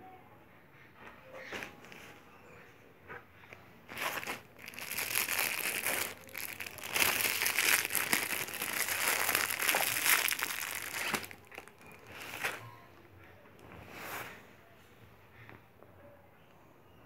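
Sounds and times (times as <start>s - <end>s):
plastic wrapping crinkling: 3.8s - 12.7s.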